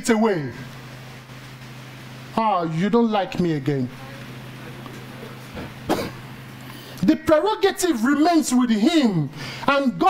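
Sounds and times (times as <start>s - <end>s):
low steady hum: 0.0s - 10.0s
person coughing: 5.6s - 6.2s.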